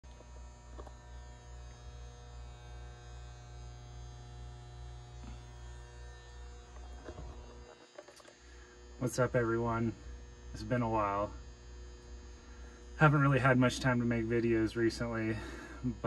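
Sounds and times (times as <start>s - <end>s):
electrical hum: 0.0s - 16.0s
high-pitched whine tones: 0.1s - 16.0s.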